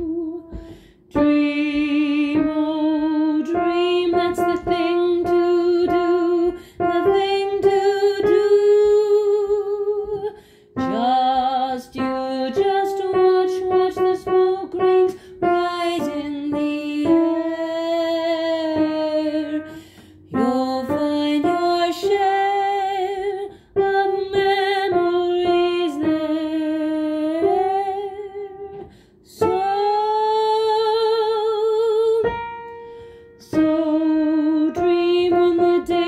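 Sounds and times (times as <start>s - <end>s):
soprano singing with vibrato: 0.0s - 32.7s, 33.4s - 36.0s.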